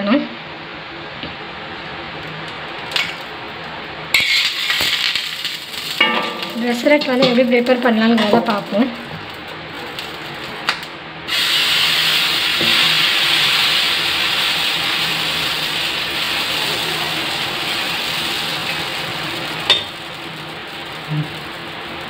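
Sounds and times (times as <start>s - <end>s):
batter sizzling on hot pan: 1.8s - 22.0s.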